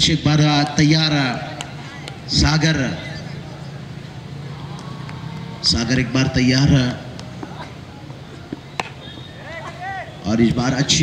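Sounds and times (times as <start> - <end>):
cricket bat striking ball: 8.5 - 9.0.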